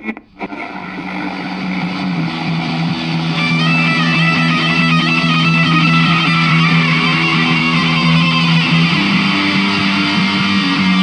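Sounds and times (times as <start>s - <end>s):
droning note with overtones: 0.5s - 11.0s.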